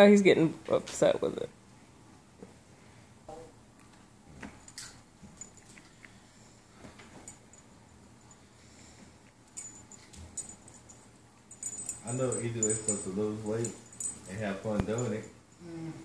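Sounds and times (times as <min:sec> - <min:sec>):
metal collar tags clinking: 0:04.6 - 0:06.1, 0:07.2 - 0:08.5, 0:09.3 - 0:15.5
light rustling: 0:09.5 - 0:15.3.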